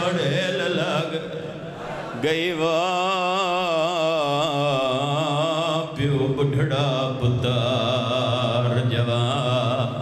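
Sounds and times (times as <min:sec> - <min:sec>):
man chanting with vibrato: 0:00.0 - 0:10.0.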